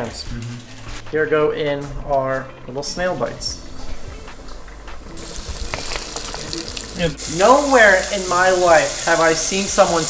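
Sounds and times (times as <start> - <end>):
hot oil sizzling in a pot: 5.2 - 10.0.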